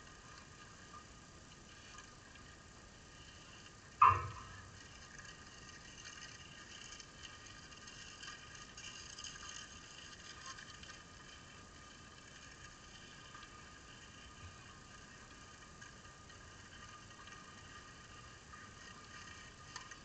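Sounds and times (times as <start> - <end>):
outdoor background hiss: 0.0 - 20.0.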